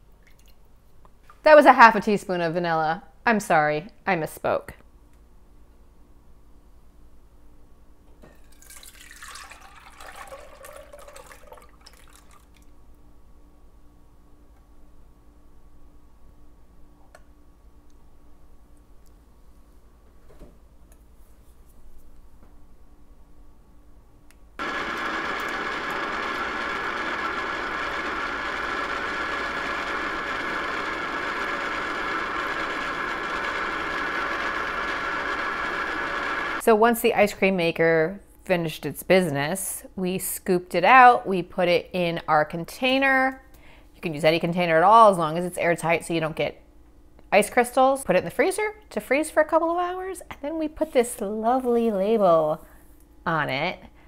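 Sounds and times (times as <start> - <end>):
liquid pouring and splashing: 8.4 - 12.7
ice cream maker motor humming: 24.6 - 36.6.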